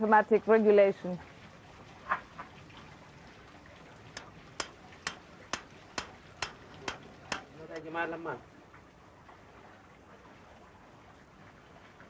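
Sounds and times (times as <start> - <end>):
hammer tapping metal: 4.2 - 7.6.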